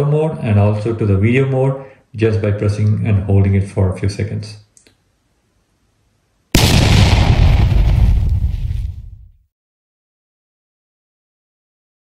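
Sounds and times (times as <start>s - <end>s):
loud hit with rushing noise: 6.6s - 9.3s.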